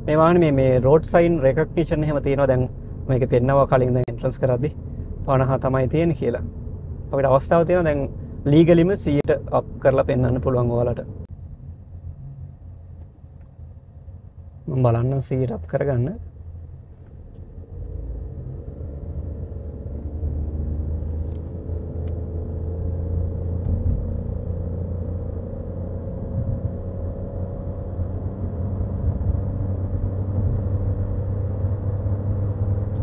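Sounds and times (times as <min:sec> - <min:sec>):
engine and road rumble: 0:00.0 - 0:33.0.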